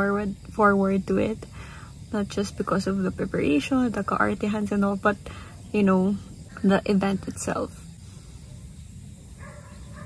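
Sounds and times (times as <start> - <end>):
faint whine-like tone: 0.0 - 10.0
low background rumble: 0.0 - 10.0.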